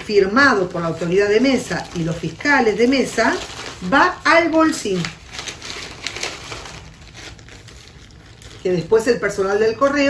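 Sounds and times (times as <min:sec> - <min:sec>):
plastic bag and paper crinkling: 0:00.0 - 0:10.0.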